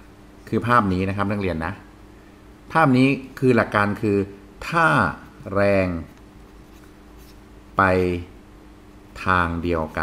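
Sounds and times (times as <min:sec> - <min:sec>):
man speaking: 0:00.5 - 0:01.9, 0:02.7 - 0:06.2, 0:07.8 - 0:08.4, 0:09.2 - 0:10.0.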